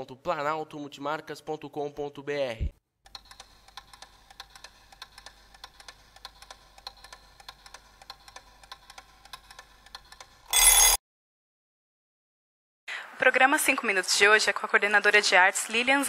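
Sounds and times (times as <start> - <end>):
rapid ticking: 3.1 - 10.3.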